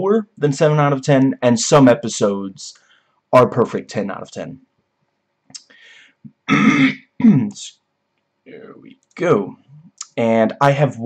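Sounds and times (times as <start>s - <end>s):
man clearing his throat: 6.3s - 7.6s.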